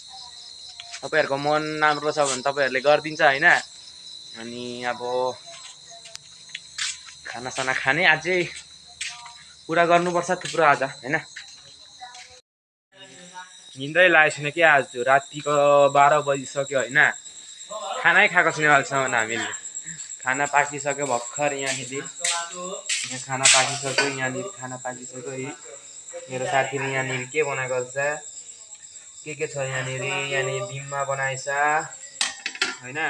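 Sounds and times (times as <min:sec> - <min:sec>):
crickets trilling: 0:00.0 - 0:12.4, 0:13.0 - 0:33.0
man talking: 0:20.3 - 0:28.2.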